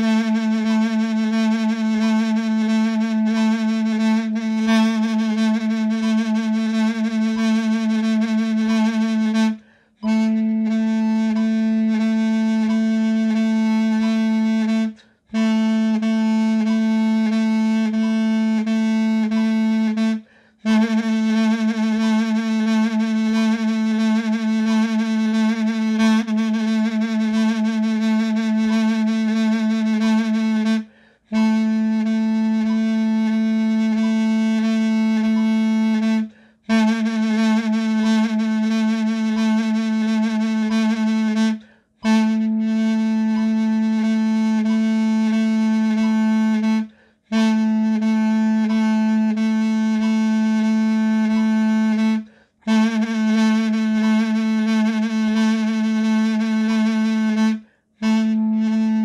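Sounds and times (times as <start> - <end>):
double-reed pipe repeated notes: 0.0 - 59.0.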